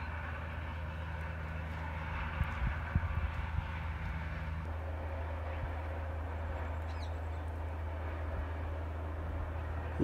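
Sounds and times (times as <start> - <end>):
distant vehicle engine drone: 0.0 - 10.0.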